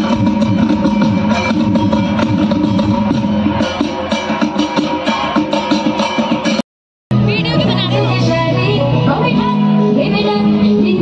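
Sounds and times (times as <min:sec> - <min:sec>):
steady drum beat: 0:00.0 - 0:08.6
dance music over loudspeakers: 0:07.2 - 0:11.0.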